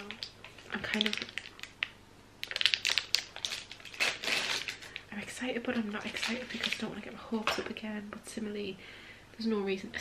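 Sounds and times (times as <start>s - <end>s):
plastic wrapper tearing and crinkling: 0.0s - 5.1s, 5.8s - 7.0s.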